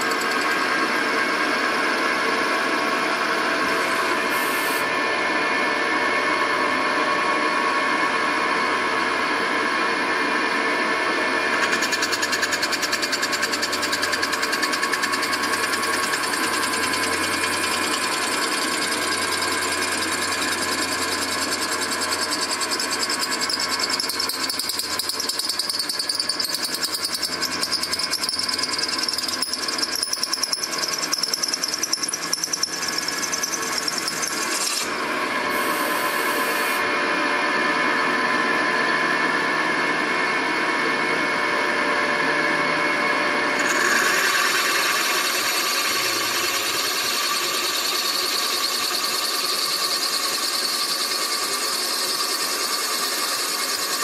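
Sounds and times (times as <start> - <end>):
milling machine whine and cutting: 0.0 - 54.0.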